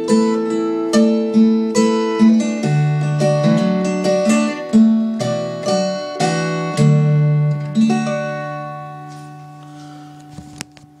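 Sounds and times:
acoustic guitar chord ringing: 0.0s - 10.6s.

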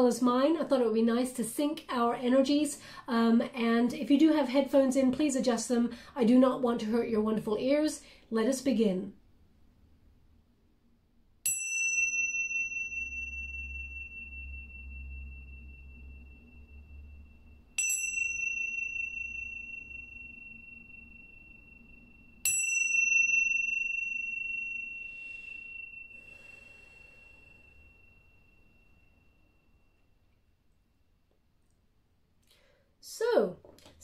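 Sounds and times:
tingsha cymbals ringing: 11.4s - 30.3s.

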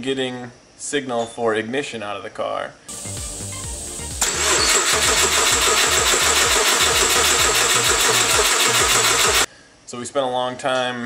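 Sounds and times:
engine cranking on starter: 4.2s - 9.5s.

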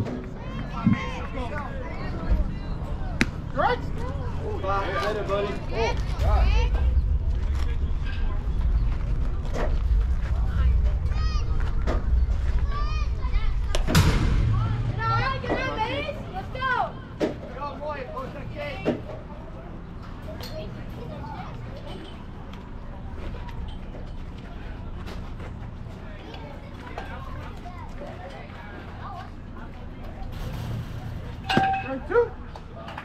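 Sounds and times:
background chatter: 0.0s - 33.0s.

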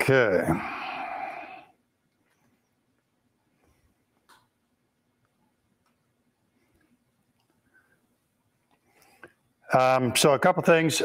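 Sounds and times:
man's breathy drawn-out vowel: 0.3s - 1.8s.

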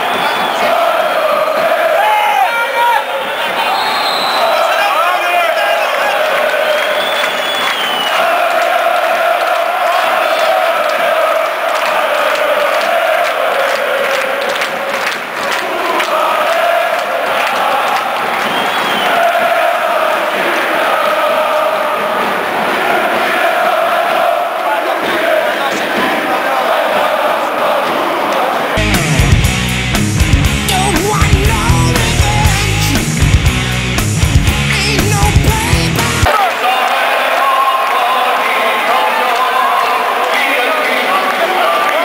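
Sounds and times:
crowd chanting in unison: 0.0s - 28.8s, 35.1s - 42.0s.

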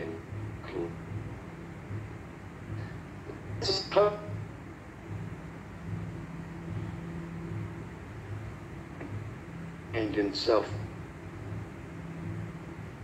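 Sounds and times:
low throbbing mechanical hum: 0.0s - 13.0s.

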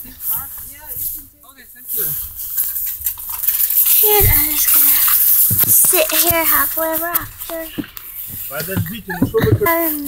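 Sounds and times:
girl's voice: 4.0s - 5.0s, 5.7s - 7.8s.

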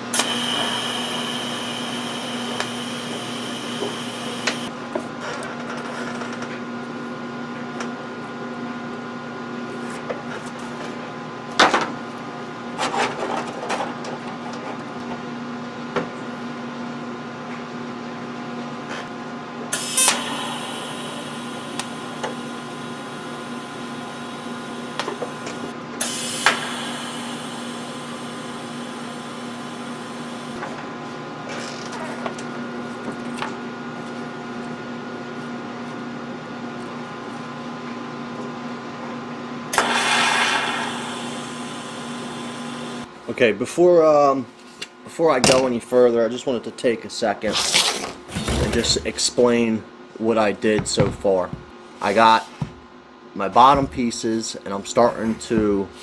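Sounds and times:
welding arc crackling and hissing: 0.0s - 4.7s, 19.8s - 30.6s, 39.8s - 43.1s
steady hum: 0.0s - 4.8s, 19.6s - 30.6s.

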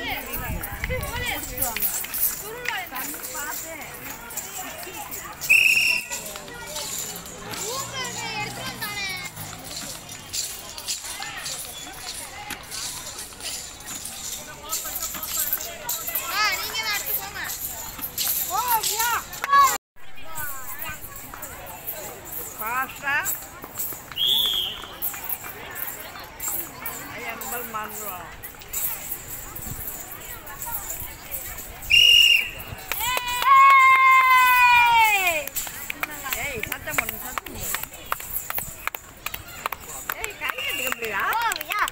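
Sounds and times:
children chattering: 0.0s - 41.9s
short high whistle: 5.5s - 6.2s, 24.2s - 25.0s, 31.9s - 32.6s.

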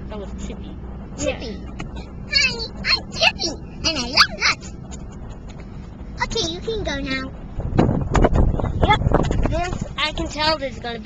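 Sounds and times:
pickup truck rumble: 0.0s - 11.0s.

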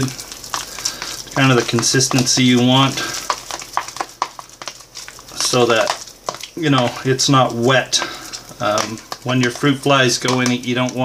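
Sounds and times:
spoon tapping plastic tub: 5.4s - 11.0s.

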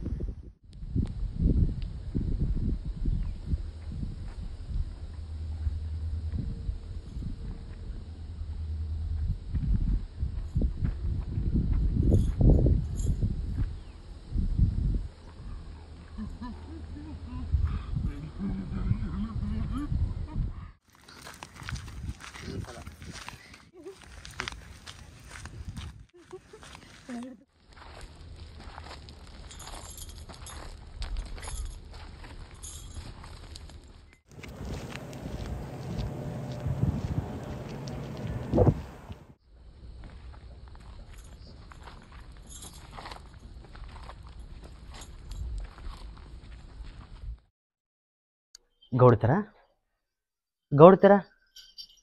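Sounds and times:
low rumble: 0.8s - 13.6s, 34.3s - 39.4s
voice: 15.5s - 20.0s, 26.2s - 27.4s, 34.5s - 39.2s, 49.0s - 49.5s, 50.7s - 51.2s
footsteps on gravel: 20.9s - 39.3s.

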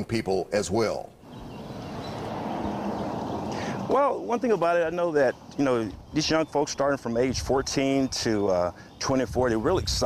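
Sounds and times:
outdoor background rush: 0.0s - 10.0s.

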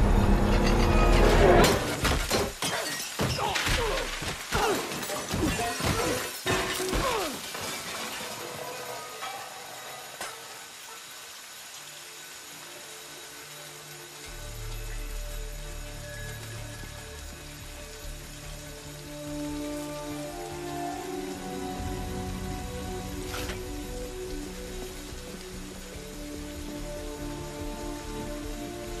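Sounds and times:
glass shattering: 0.5s - 9.6s
spraying water hiss: 1.8s - 29.0s.

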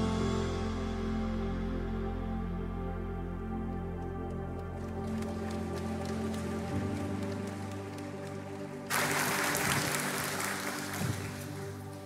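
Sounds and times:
synth pad chord: 0.0s - 12.0s
congregation applause: 4.8s - 12.0s.

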